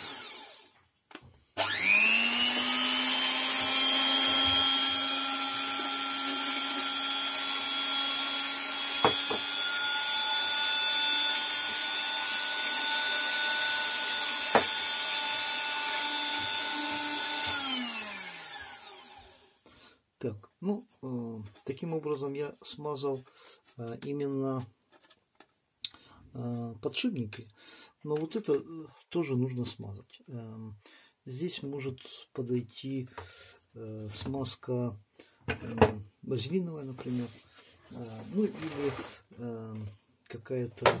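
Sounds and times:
electric mixer motor whining: 0:00.0 - 0:00.8, 0:01.6 - 0:19.6.

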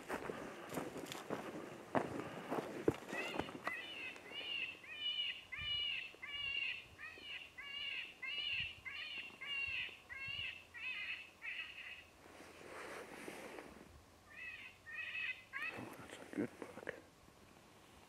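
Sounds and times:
animal call: 0:03.1 - 0:12.1, 0:14.3 - 0:16.1.

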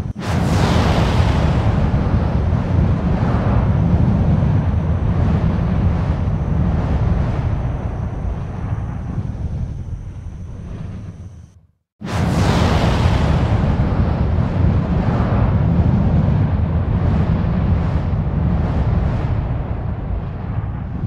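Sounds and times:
loud low rumble: 0:00.0 - 0:21.0.

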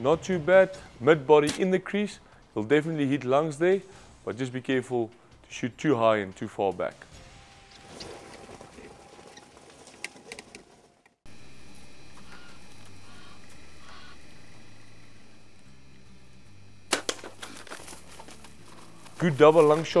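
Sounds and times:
low background hum: 0:11.3 - 0:20.0
bowstring snap and arrow strike: 0:16.9 - 0:18.0.

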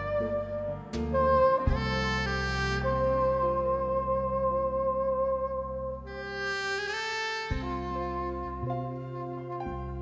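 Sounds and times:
cellos and double bass: 0:00.0 - 0:10.0
saxophone long note: 0:00.0 - 0:10.0.

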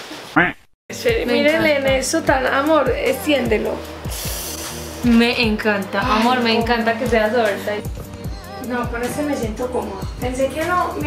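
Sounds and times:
regular low beat: 0:01.0 - 0:11.0.

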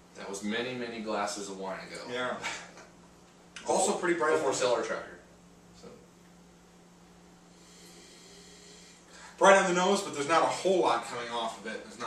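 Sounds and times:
faint steady hum: 0:00.0 - 0:12.0
soft hiss: 0:00.0 - 0:12.0.

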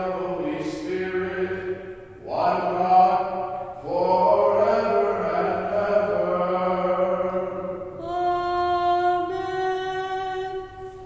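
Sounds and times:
man chanting solo: 0:00.0 - 0:07.8.

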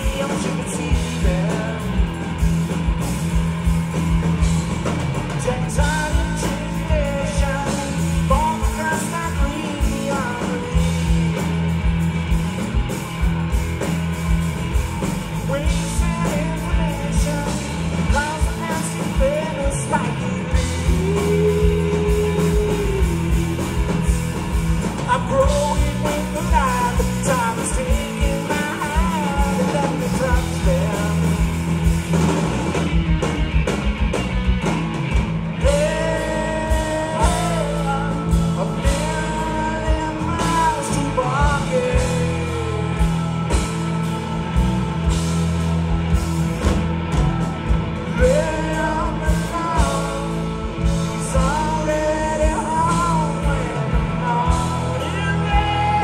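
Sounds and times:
drum kit beat: 0:00.0 - 0:56.0
electric guitars: 0:00.0 - 0:56.0.

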